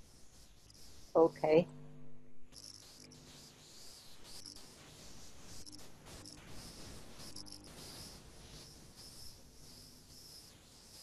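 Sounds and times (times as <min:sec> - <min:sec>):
faint cricket chirping: 0:02.5 - 0:11.0.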